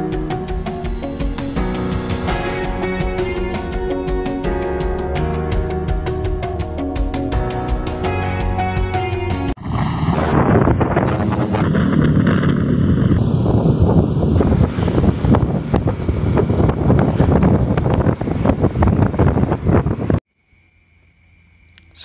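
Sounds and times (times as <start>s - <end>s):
wind buffeting microphone: 9.6s - 20.2s.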